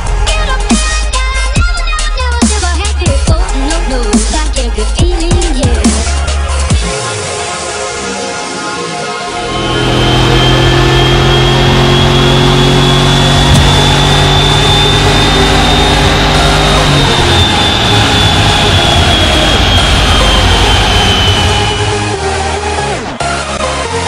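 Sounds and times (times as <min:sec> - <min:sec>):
high whine: 0:08.6 - 0:24.0
car engine at high rpm: 0:09.1 - 0:24.0.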